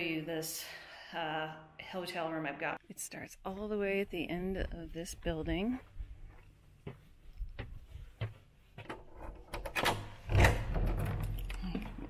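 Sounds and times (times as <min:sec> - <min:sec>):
footsteps: 0:03.8 - 0:09.1.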